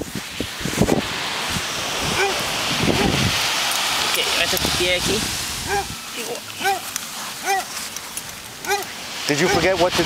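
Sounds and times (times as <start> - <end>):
wind hissing: 0.0 - 10.0
voices: 4.0 - 10.0.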